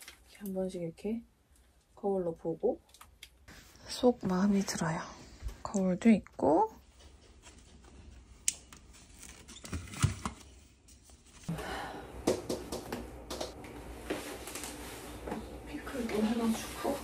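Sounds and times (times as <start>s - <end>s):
kitchen background: 0.0s - 17.0s.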